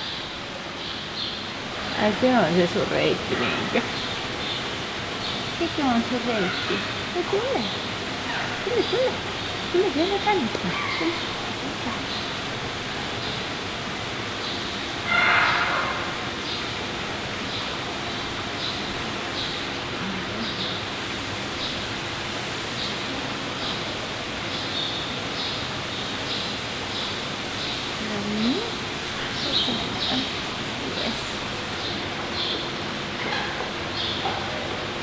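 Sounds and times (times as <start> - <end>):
indoor background hiss: 0.0 - 35.0.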